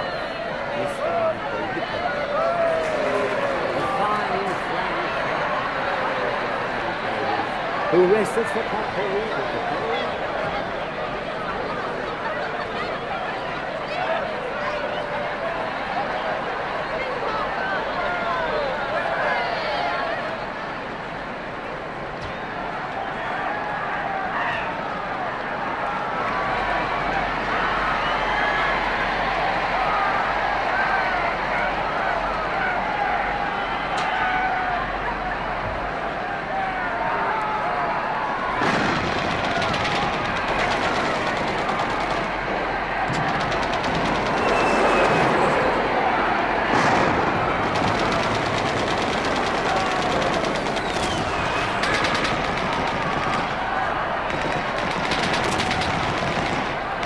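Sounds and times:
rapid crackling and rattling: 38.5s - 57.0s.

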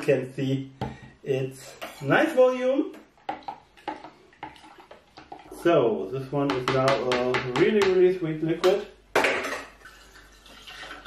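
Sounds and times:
liquid pouring through a funnel: 3.8s - 5.7s, 9.8s - 11.0s.

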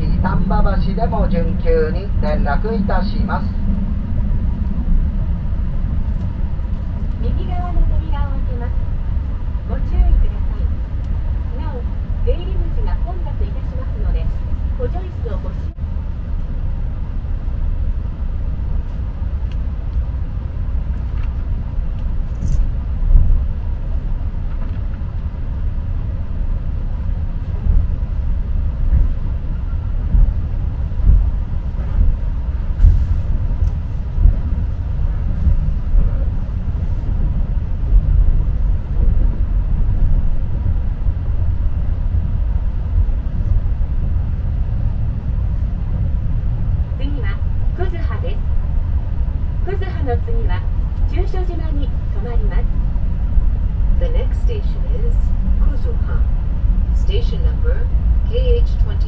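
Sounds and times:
train cabin low rumble: 0.0s - 59.0s.

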